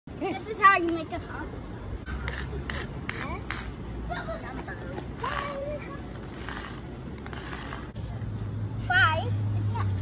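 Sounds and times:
chalk scraping on concrete: 2.0 - 3.9, 5.2 - 9.7.

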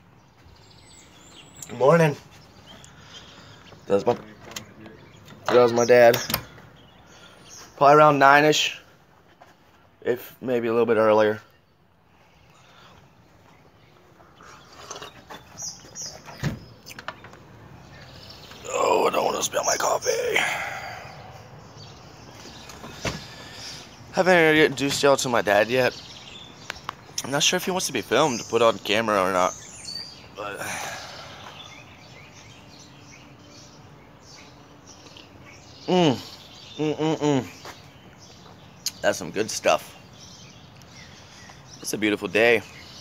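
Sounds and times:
birds chirping: 0.0 - 43.0
outdoor background hiss: 0.0 - 43.0
thump: 22.9 - 23.3.

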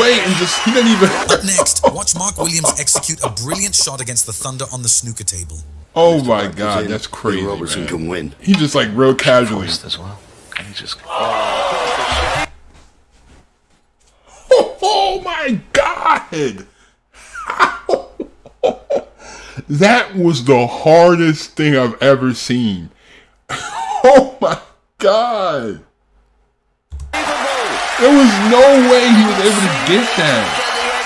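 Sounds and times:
crowd applauding: 0.0 - 3.9, 11.1 - 12.5, 27.0 - 31.0
man talking: 0.0 - 11.1, 27.2 - 31.0
man yelling excitedly: 14.5 - 16.4, 27.2 - 30.6.

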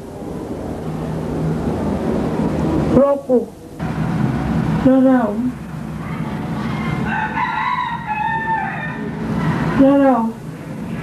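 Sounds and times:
rooster crowing: 6.6 - 9.8.

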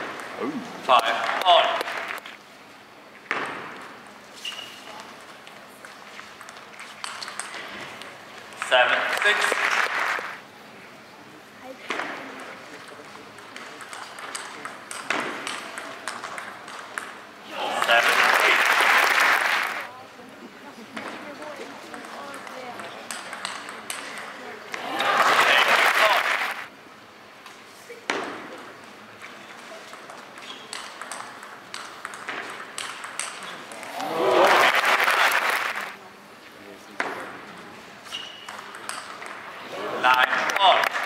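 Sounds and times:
crowd applauding and cheering: 9.2 - 10.4, 17.5 - 19.9, 24.8 - 26.7, 33.8 - 36.0
table tennis ball clicking: 21.9 - 24.3, 29.9 - 33.4, 38.4 - 39.4.

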